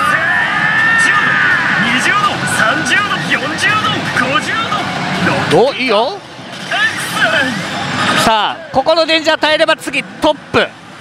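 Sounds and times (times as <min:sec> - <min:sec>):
gaming hall noise: 0:00.0 - 0:11.0.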